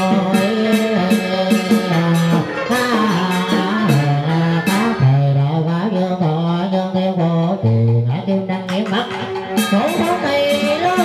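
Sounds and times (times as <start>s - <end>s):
keyboard accompaniment: 0.0s - 11.0s
plucked guitar: 0.0s - 11.0s.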